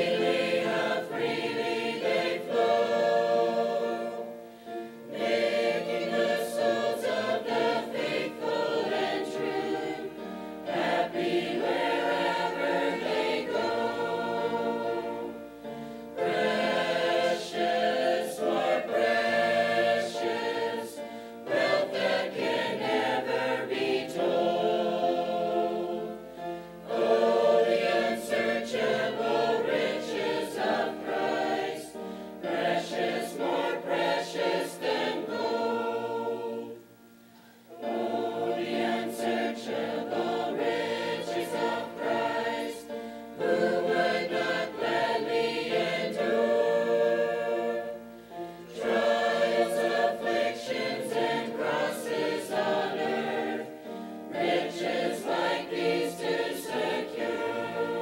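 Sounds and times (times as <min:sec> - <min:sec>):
mixed choir singing: 0:00.0 - 0:37.1, 0:37.7 - 0:58.0.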